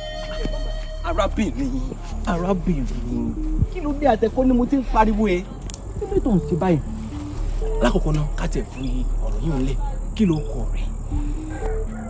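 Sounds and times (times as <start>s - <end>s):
crickets chirring: 0.0s - 12.0s
soft background music: 0.0s - 12.0s.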